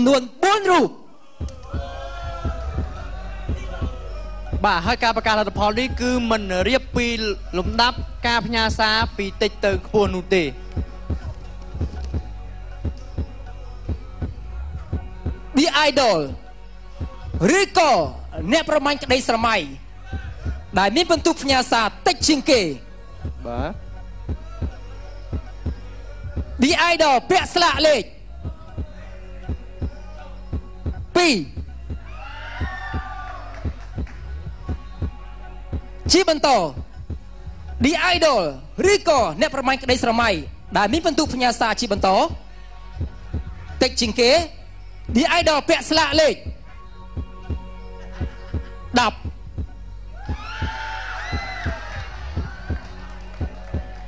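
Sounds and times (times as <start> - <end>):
heartbeat thuds: 1.4 - 5.0, 10.8 - 15.5, 20.1 - 21.6, 23.2 - 26.6, 28.3 - 37.9, 43.0 - 44.1, 47.2 - 54.0.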